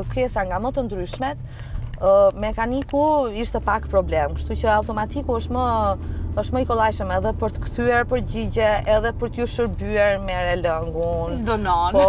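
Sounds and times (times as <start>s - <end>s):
road and engine rumble: 0.0s - 12.0s
woman speaking: 2.0s - 12.0s.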